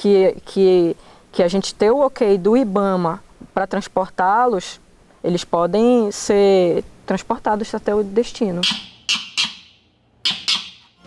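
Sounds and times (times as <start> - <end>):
dog pup shrieking: 8.6 - 11.0.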